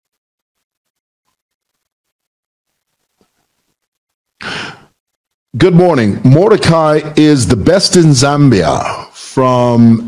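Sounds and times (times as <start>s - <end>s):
man breathing: 4.4s - 5.0s.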